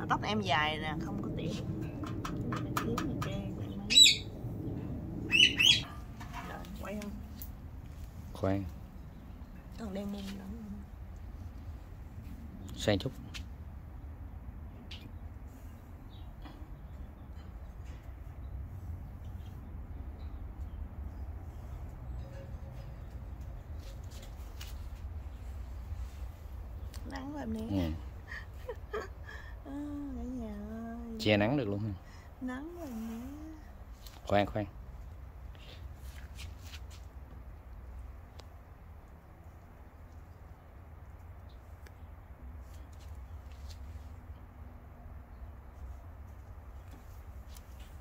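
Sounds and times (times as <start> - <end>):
steady low rumble: 0.0 - 48.0
small bird chirping: 3.6 - 4.4, 5.3 - 6.0
woman vocal sound: 29.0 - 31.2, 32.4 - 33.7.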